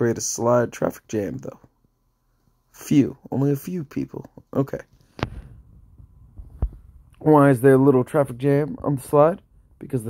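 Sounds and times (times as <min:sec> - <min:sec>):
faint low hum: 0:00.0 - 0:10.0
low thumps: 0:05.2 - 0:07.2.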